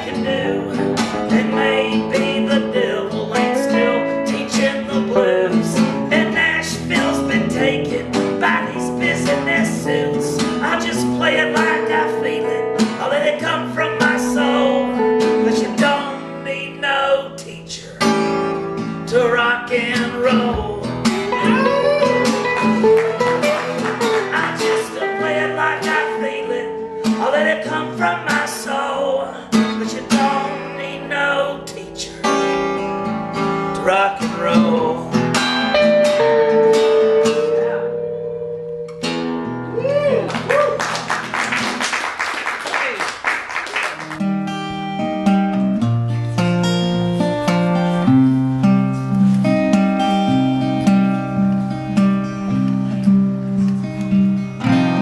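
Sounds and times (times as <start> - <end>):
acoustic guitar strumming: 0.0 - 42.2, 43.7 - 55.0
electric guitar lead lines: 19.7 - 27.5, 32.3 - 40.5, 44.0 - 55.0.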